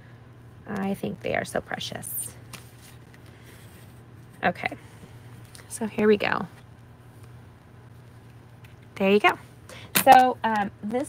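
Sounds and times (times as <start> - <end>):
low steady hum: 0.0 - 11.0
card paper rustling: 2.5 - 4.0.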